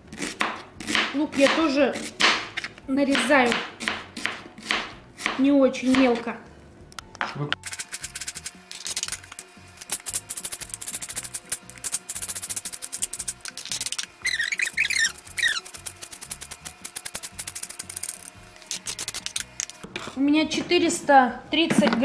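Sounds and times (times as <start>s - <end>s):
background music: 0.0s - 22.0s
knife chopping on plastic board: 0.2s - 6.2s.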